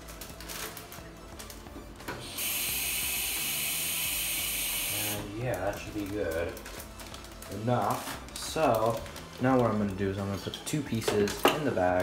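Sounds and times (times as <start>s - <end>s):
tap water running into plastic bag: 0.0s - 12.0s.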